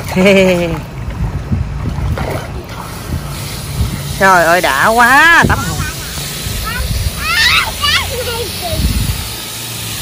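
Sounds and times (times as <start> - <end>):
water sloshing in paddling pool: 0.0 - 3.3
wind rumble on microphone: 0.1 - 4.5, 5.2 - 7.6, 8.6 - 9.4.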